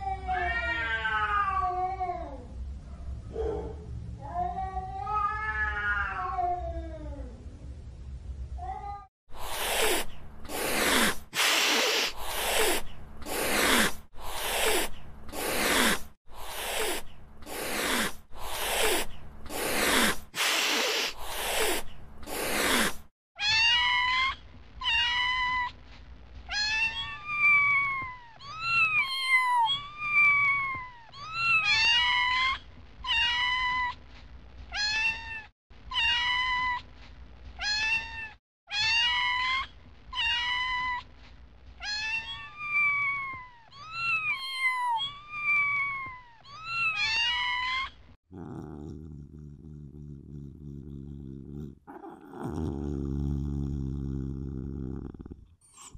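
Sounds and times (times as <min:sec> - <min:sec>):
cat meowing: 0:00.0 - 0:02.3, 0:04.3 - 0:06.8
short harsh noisy bursts: 0:09.4 - 0:23.0.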